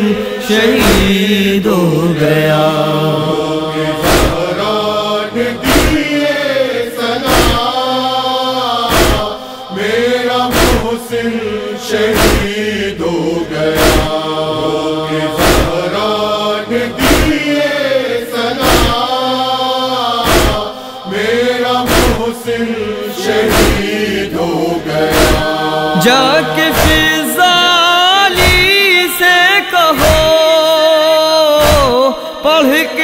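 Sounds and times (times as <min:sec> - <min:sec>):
wordless chanted vocal chorus: 0:00.0 - 0:33.0
rhythmic chest-beating strikes: 0:00.6 - 0:01.4, 0:02.7 - 0:08.2, 0:08.8 - 0:19.5, 0:20.1 - 0:27.4, 0:28.3 - 0:28.9, 0:29.9 - 0:30.4, 0:31.6 - 0:32.2.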